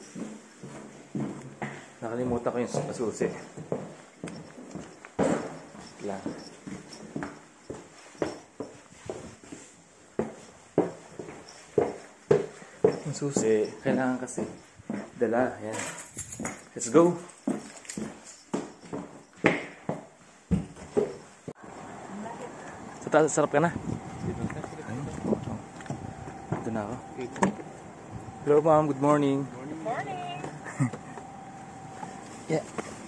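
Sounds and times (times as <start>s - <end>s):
footsteps thudding: 0.0s - 15.2s, 17.3s - 21.6s, 23.8s - 28.3s
outdoor air rushing: 21.6s - 33.0s.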